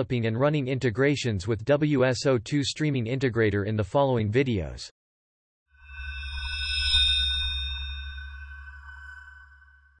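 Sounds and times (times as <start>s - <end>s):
high ringing chime chord: 5.7s - 10.0s.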